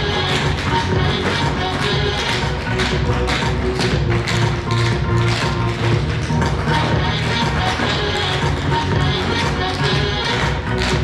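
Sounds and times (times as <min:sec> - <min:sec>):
recorded backing music: 0:00.0 - 0:11.0
tap shoes on wooden floor: 0:00.3 - 0:06.9.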